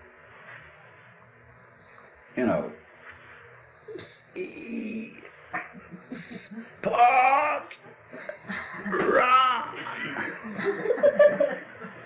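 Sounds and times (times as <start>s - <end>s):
man grunting: 6.8s - 7.8s, 8.8s - 10.1s
man groaning with effort: 8.9s - 10.0s.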